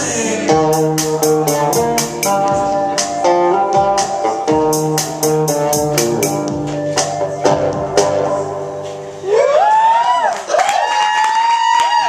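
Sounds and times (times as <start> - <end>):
people clapping: 9.6 - 12.0.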